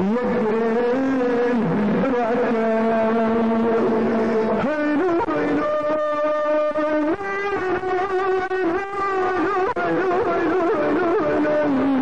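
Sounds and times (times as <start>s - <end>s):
man singing long wavering notes: 0.0s - 12.0s.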